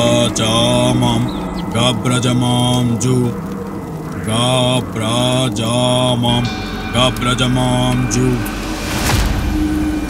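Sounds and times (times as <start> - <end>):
man chanting in low monotone: 0.0 - 10.0.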